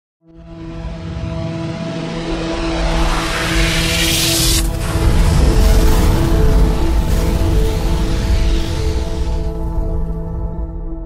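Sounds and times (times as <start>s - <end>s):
hissing riser swell: 0.9s - 10.2s.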